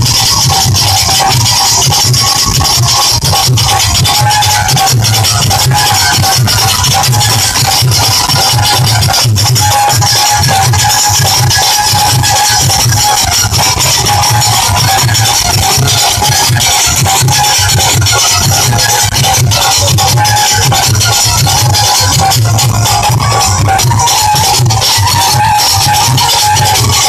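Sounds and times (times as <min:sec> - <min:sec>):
drum beating steady rhythm: 0:00.0 - 0:27.0
held melodic tone: 0:00.0 - 0:27.0
folk instrument ensemble playing: 0:02.4 - 0:27.0.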